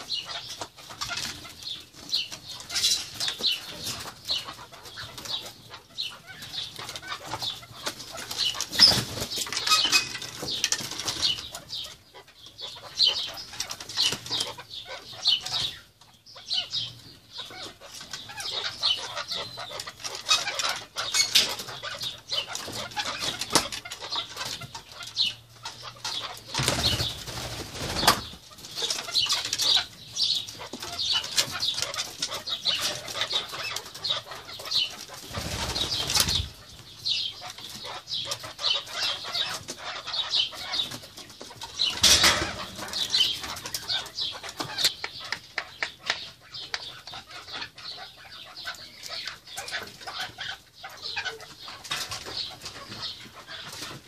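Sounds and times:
birds scurrying and fluttering wings: 0.0s - 54.0s.

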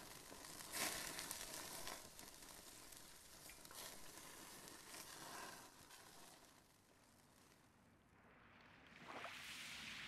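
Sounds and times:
fish sizzling on a grill: 0.0s - 6.8s.

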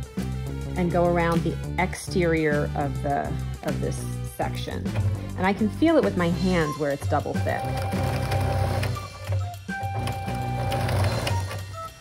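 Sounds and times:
background music with held notes: 0.0s - 12.0s
electric sewing machine stitching: 7.4s - 12.0s.

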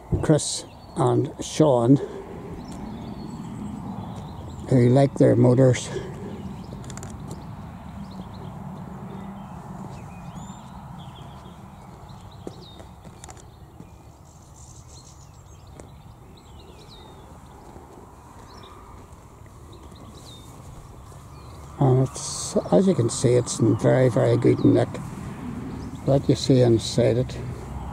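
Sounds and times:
low outdoor rumble: 1.0s - 13.0s, 15.4s - 27.9s
footsteps on tarmac: 2.6s - 4.8s, 5.8s - 14.6s, 15.2s - 23.2s, 23.8s - 27.9s.

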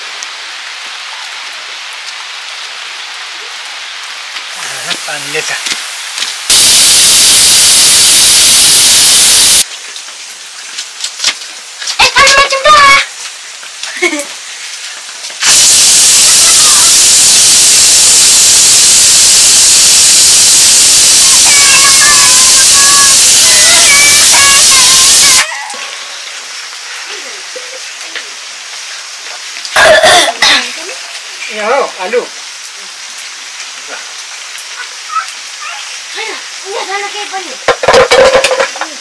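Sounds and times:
sizzling in hot oil: 0.0s - 25.5s, 26.1s - 39.0s
faint voices: 21.1s - 28.4s
children's voices: 21.2s - 26.0s.

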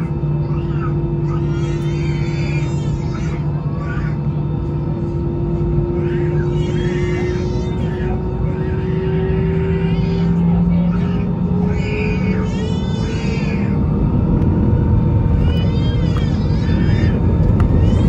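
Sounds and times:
airliner cabin engine drone: 0.0s - 18.0s
muffled voices: 0.0s - 18.0s.

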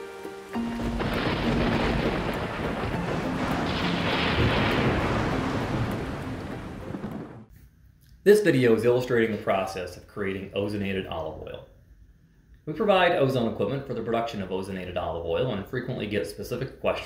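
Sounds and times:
heavy rain hissing: 0.0s - 7.5s
thunder rumbling: 0.6s - 7.5s.

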